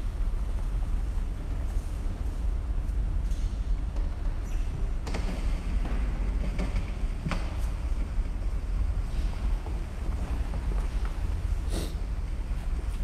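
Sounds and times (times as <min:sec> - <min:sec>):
low rumble on microphone: 0:00.0 - 0:13.0
faint knocks and clicks: 0:03.2 - 0:08.1.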